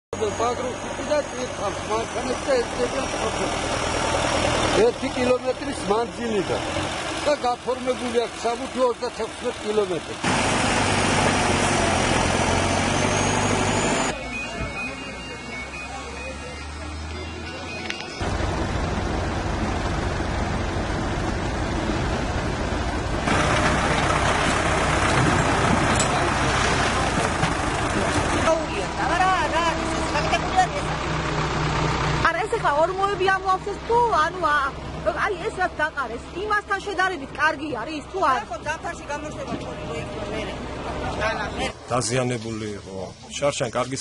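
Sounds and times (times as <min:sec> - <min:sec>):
diesel engines running: 0:00.1 - 0:44.0
people talking: 0:00.2 - 0:03.6, 0:04.7 - 0:06.6, 0:14.1 - 0:18.2, 0:27.9 - 0:31.0, 0:32.2 - 0:44.0.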